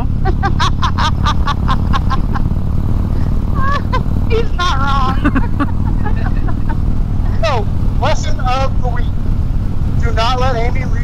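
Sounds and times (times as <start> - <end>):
person laughing: 0.0 - 2.5, 3.2 - 7.6
motorcycle engine rumble: 0.0 - 11.0.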